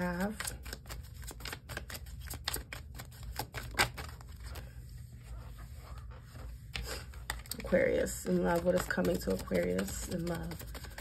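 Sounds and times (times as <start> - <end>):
cards being shuffled: 0.0 - 4.8, 6.2 - 11.0.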